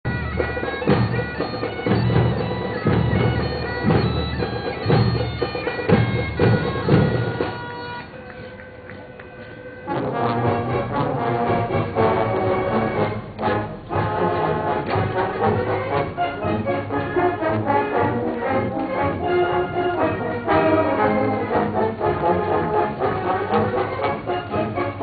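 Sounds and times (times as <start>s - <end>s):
bagpipes playing over a drone: 0.1s - 25.0s
marching drum beats: 0.1s - 25.0s.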